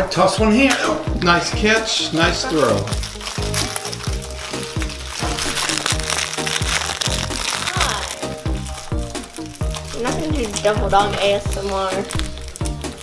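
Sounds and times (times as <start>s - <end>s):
background music with steady beat: 0.0s - 13.0s
plastic wrapper crinkling: 2.0s - 13.0s.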